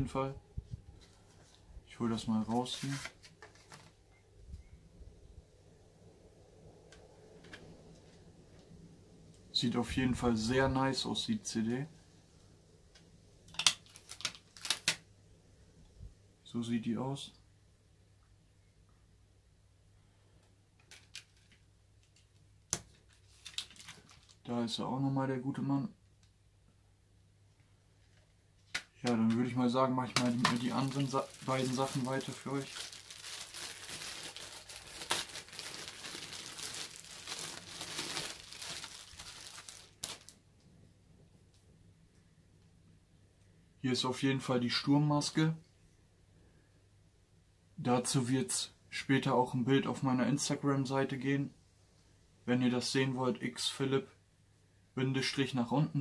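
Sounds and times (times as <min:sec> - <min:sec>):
plastic bag crinkling: 0:13.8 - 0:15.0, 0:23.1 - 0:24.5, 0:30.2 - 0:40.4.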